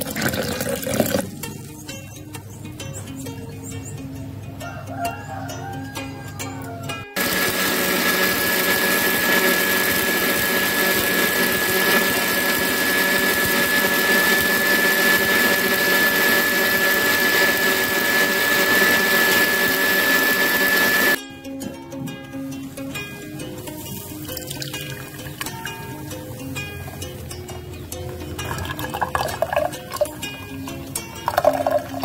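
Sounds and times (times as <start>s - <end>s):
blender running with high whine: 7.2s - 21.2s.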